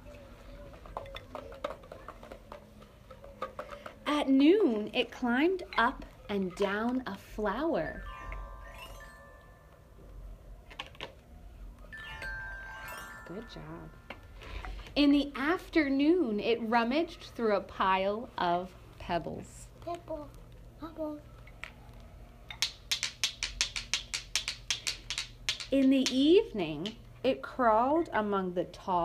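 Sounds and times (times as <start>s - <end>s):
glockenspiel glissando runs: 7.9s - 10.0s, 11.9s - 14.5s.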